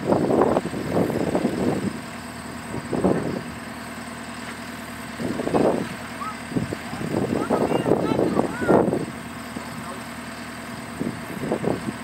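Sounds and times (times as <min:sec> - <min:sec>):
engine idling: 0:00.0 - 0:12.0
wind gusts on microphone: 0:05.2 - 0:09.2, 0:10.9 - 0:12.0.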